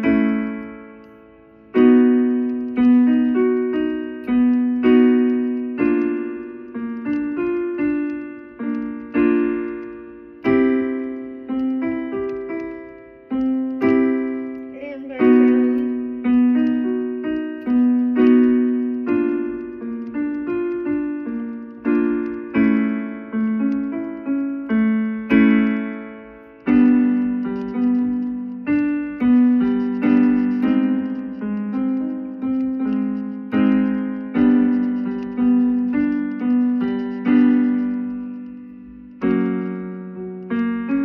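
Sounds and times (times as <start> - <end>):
piano keyboard vocal warm-up notes: 0.0 - 41.0.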